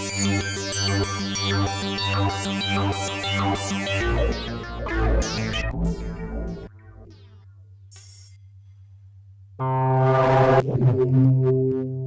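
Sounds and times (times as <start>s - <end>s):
layered synth chord drone: 0.0s - 7.4s, 9.6s - 12.0s.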